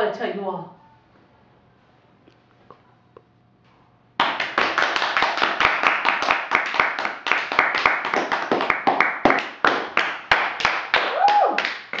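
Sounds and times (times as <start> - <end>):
people clapping: 4.2 - 12.0.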